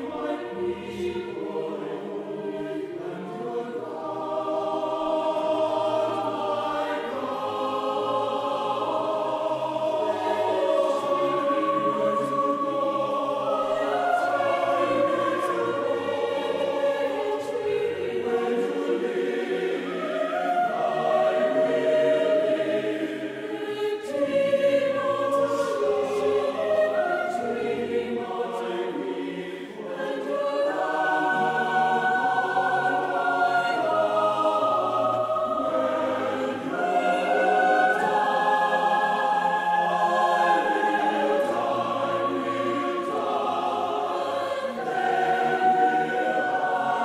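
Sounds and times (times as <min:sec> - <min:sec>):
choir singing: 0:00.0 - 0:47.0.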